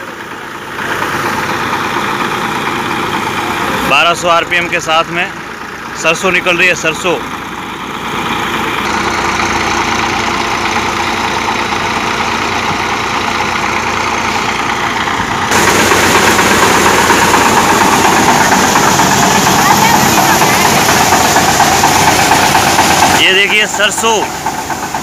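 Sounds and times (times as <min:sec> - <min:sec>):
thresher running: 0:00.0 - 0:25.0
tractor diesel engine: 0:00.0 - 0:25.0.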